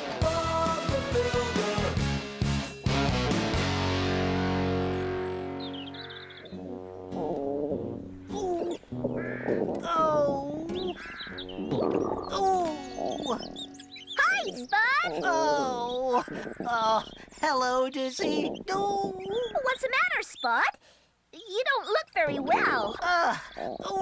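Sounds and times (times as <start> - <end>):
gliding cartoon calls: 5.8 - 20.7.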